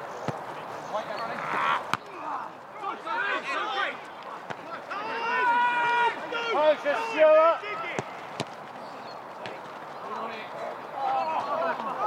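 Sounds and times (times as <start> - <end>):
players shouting: 1.0 - 9.6.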